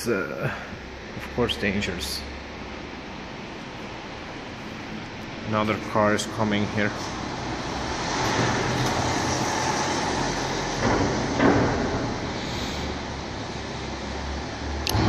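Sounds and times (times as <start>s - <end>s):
car driving in echoing garage: 0.0s - 15.0s.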